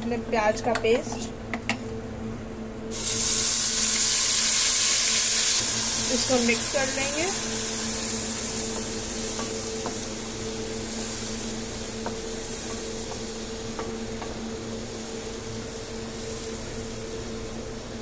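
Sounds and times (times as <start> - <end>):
steady low hum: 0.0 - 18.0
paste sizzling in hot oil: 2.9 - 18.0.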